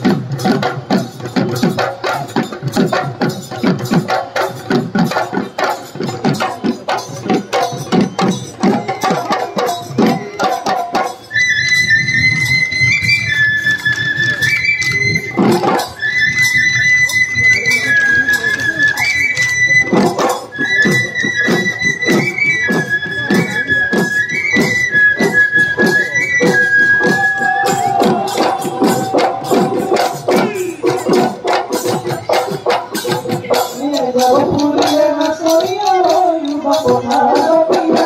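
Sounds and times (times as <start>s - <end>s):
dhol drums beating: 0.0s - 38.0s
high piping wind instrument: 0.0s - 38.0s.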